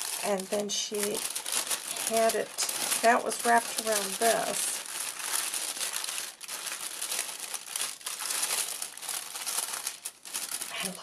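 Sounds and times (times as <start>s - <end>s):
tissue paper crinkling: 0.0s - 11.0s.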